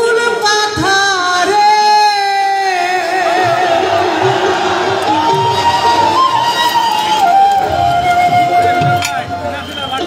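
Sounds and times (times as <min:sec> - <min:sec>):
crowd noise: 0:00.0 - 0:10.0
instrumental accompaniment: 0:03.2 - 0:10.0.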